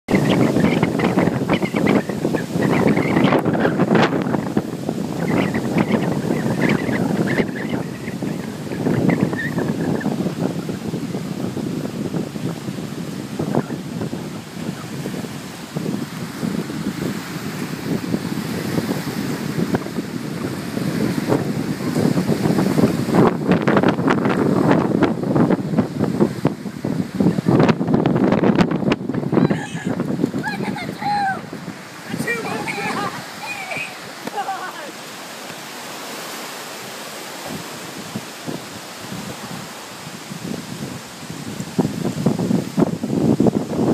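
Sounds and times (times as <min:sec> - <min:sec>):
waves washing against shore: 0:00.0 - 0:43.9
wind buffeting microphone: 0:00.1 - 0:43.9.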